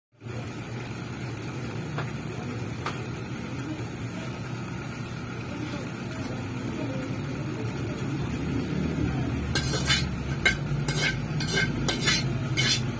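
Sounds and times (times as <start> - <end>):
food sizzling in a pan: 9.4 - 12.9.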